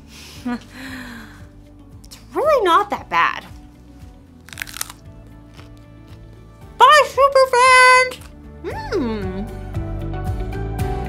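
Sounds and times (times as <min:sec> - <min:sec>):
quiet background music: 0:00.0 - 0:11.0
crunchy bite into broccoli: 0:04.4 - 0:06.3.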